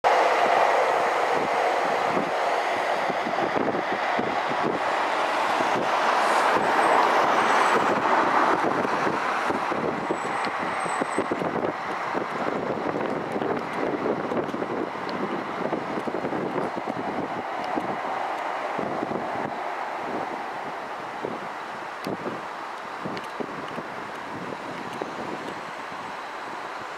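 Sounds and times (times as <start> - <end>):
electric trains rumbling: 0.0 - 26.9.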